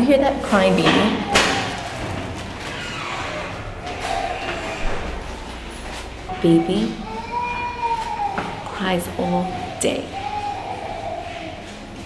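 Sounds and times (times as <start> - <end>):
baby crying: 3.2 - 5.2, 6.3 - 11.8.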